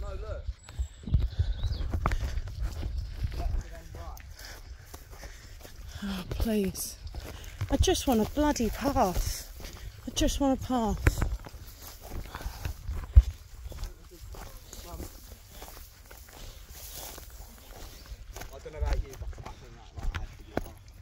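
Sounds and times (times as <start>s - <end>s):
footsteps crunching on stony track: 0.0s - 21.0s
grass rustling against legs: 2.0s - 21.0s.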